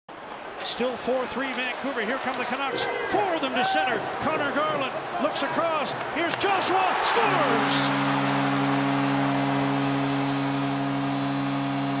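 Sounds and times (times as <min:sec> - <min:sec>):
crowd roaring: 0:06.2 - 0:12.0
goal horn chord: 0:07.1 - 0:12.0.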